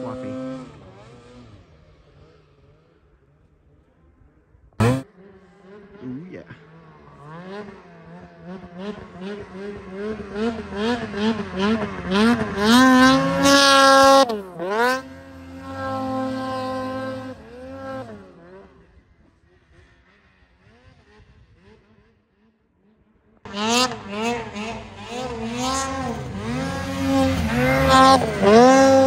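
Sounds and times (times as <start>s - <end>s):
snowmobile engine revving: 0.0s - 3.9s, 4.8s - 22.5s, 23.4s - 29.0s.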